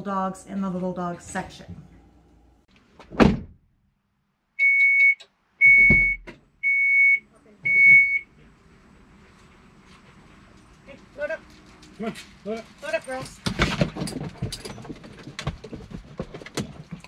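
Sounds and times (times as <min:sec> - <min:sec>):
low thunk of liftgate: 0:03.1 - 0:03.6
high warning beeps: 0:04.6 - 0:08.3.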